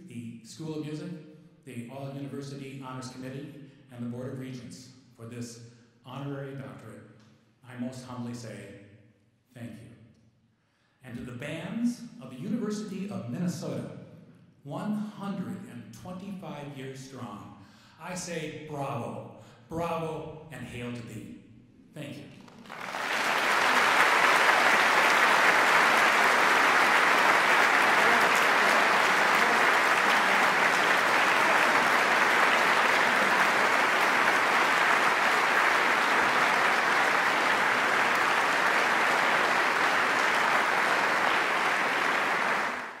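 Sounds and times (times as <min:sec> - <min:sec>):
audience applauding: 0:22.4 - 0:43.0.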